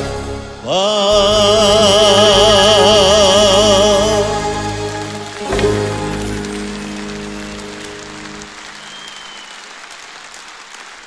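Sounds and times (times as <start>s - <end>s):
audience applause: 3.8s - 11.0s.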